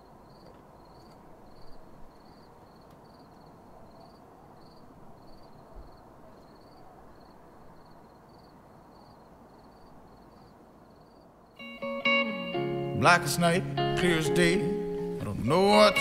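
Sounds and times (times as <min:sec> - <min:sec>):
cricket chirping: 0:00.0 - 0:11.8
low steady hiss: 0:00.0 - 0:16.0
acoustic guitar: 0:11.7 - 0:16.0.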